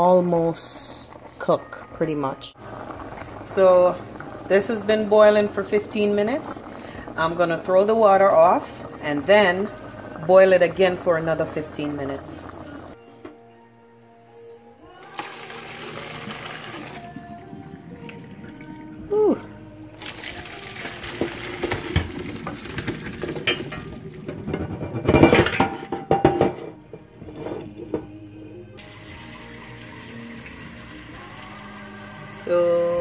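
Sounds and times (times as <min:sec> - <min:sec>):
background music: 0:00.0 - 0:33.0
boiling water splashing into sink: 0:02.6 - 0:13.0, 0:15.0 - 0:19.0, 0:19.9 - 0:24.5.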